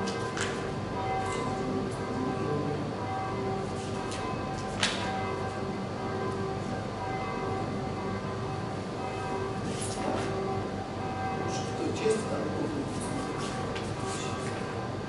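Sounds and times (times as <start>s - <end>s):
church bells ringing: 0.0s - 15.0s.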